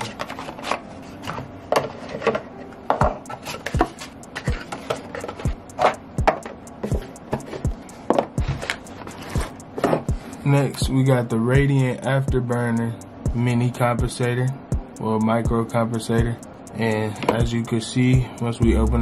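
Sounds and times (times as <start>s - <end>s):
cardboard boxes on wooden table: 0.0s - 10.3s.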